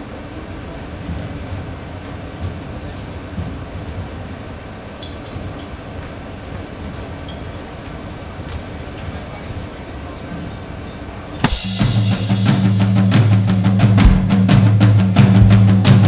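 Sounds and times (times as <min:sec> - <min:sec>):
stage amplifier drone: 0:11.4 - 0:16.0.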